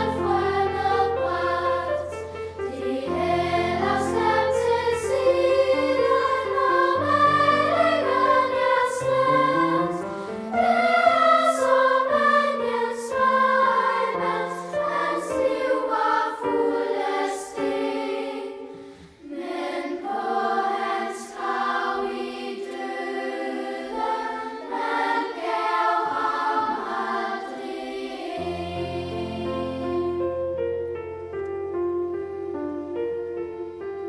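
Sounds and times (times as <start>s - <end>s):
children's choir singing: 0.0s - 30.7s.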